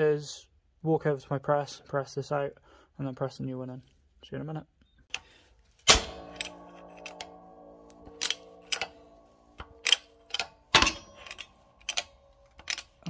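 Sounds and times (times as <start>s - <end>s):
metallic clicks and knocks: 5.1s - 13.0s
loud metal clang: 5.8s - 13.0s.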